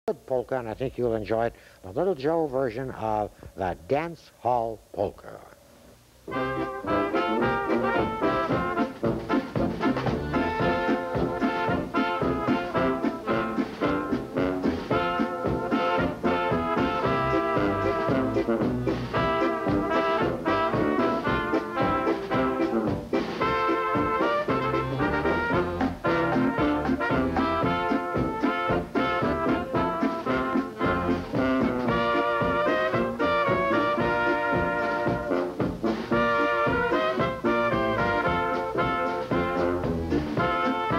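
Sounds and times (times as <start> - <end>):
drum kit: 6.2 - 40.9
sousaphone bass: 6.2 - 40.9
trumpets playing tune: 6.2 - 40.9
accordion: 6.3 - 40.9.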